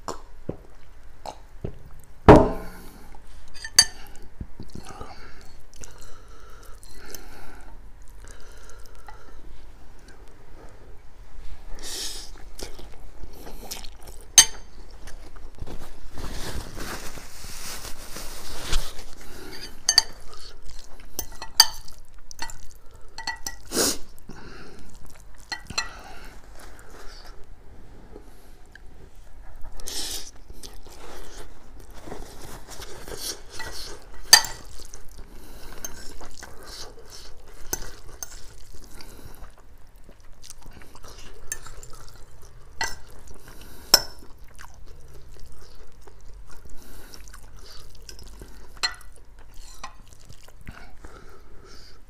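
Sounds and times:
chewing: 0:12.3 - 0:15.6, 0:18.7 - 0:27.4, 0:28.7 - 0:52.0
paper napkin rustling: 0:15.6 - 0:19.2.

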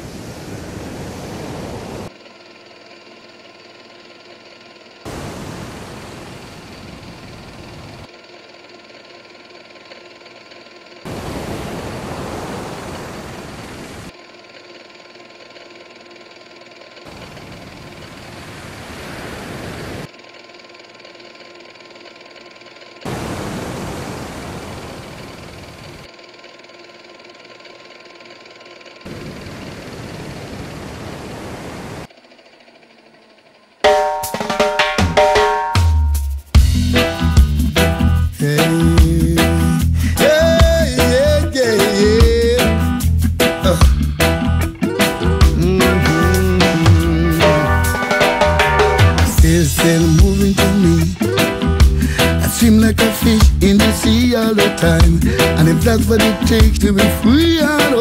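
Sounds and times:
waves surging: 0:00.0 - 0:02.1, 0:05.1 - 0:06.9, 0:11.1 - 0:14.1, 0:18.2 - 0:20.1, 0:23.1 - 0:25.9, 0:29.1 - 0:32.1
steady hum: 0:00.0 - 0:15.3, 0:22.4 - 0:26.2, 0:32.8 - 0:58.0.

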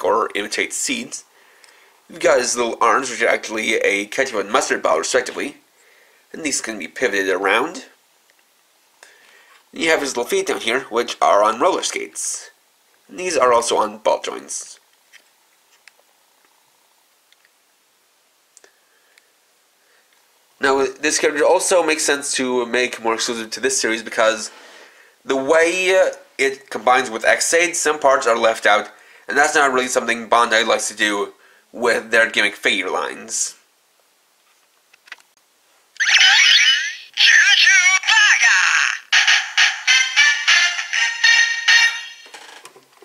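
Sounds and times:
warbling synthesized voice: 0:36.0 - 0:37.8.

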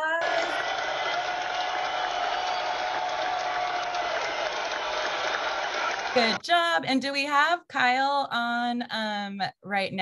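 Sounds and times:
crowd applause: 0:00.2 - 0:06.4.

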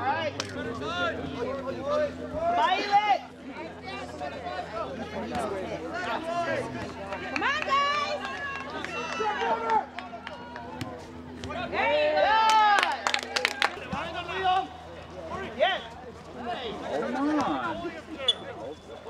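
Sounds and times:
crowd shouting and yelling: 0:00.0 - 0:19.0.

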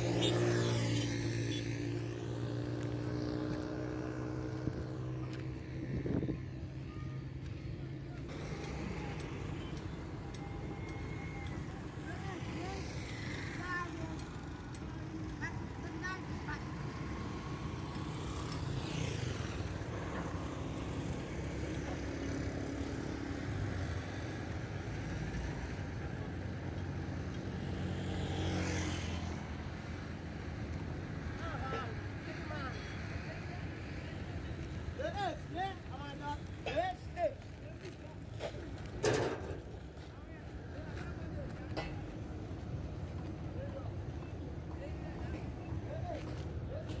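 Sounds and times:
vehicle passing: 0:26.9 - 0:31.6
road roller engine rumble: 0:36.1 - 0:43.2.

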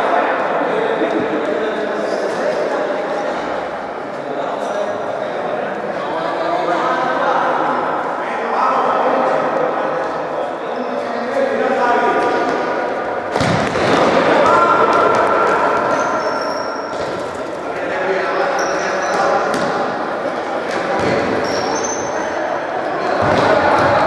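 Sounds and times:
people shouting: 0:13.7 - 0:16.9
shoes squeaking on court floor: 0:15.0 - 0:17.7, 0:18.4 - 0:19.9, 0:20.6 - 0:22.3.

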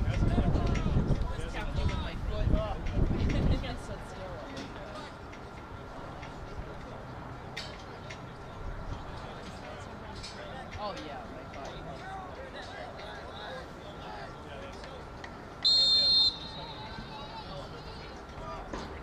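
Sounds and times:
faint distant voices: 0:00.0 - 0:19.0
referee's whistle blast: 0:15.6 - 0:16.8.

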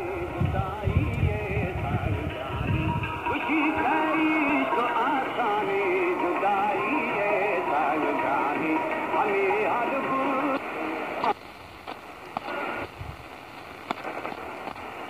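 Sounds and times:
music with singing from radio: 0:00.0 - 0:15.0.

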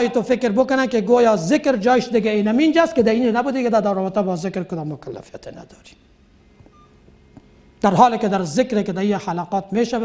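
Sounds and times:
man speaking: 0:00.0 - 0:06.0, 0:07.8 - 0:10.0
faint short beep: 0:06.7 - 0:07.0.

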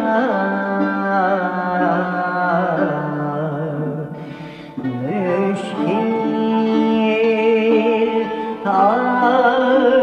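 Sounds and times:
person singing classical vocal piece: 0:00.0 - 0:10.0.

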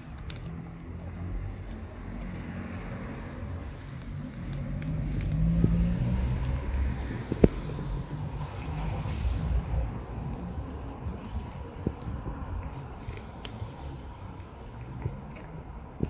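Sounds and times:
car passing rumble: 0:00.4 - 0:16.0
cat chewing dry kibble: 0:10.2 - 0:16.0.

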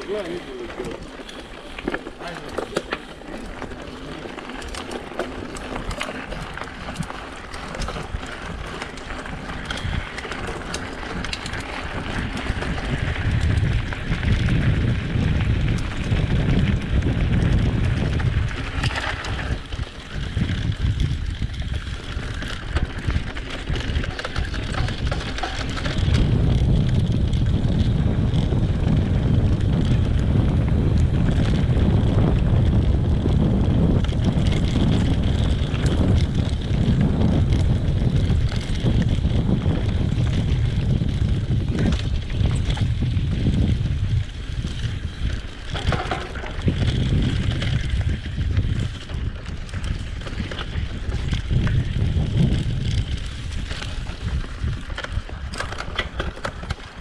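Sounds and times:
tyres rolling on gravel: 0:00.0 - 0:57.0
wind buffeting microphone: 0:00.0 - 0:57.0.

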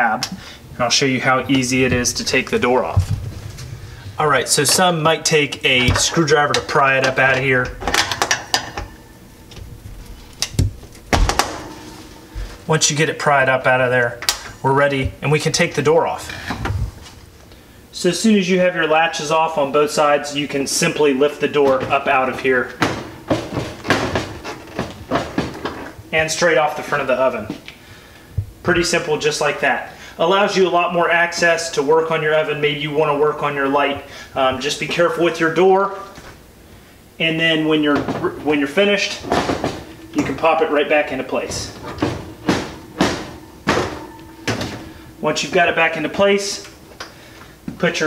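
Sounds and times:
oven door hinges clunking and rattling: 0:04.2 - 0:09.0, 0:21.6 - 0:26.0, 0:37.8 - 0:40.7, 0:41.3 - 0:45.1.

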